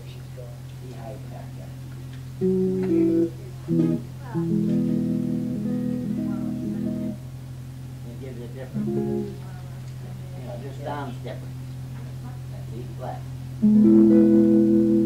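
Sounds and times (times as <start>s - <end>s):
steady low hum: 0.0s - 15.0s
guitar chords: 2.3s - 7.4s, 8.7s - 9.5s, 13.6s - 15.0s.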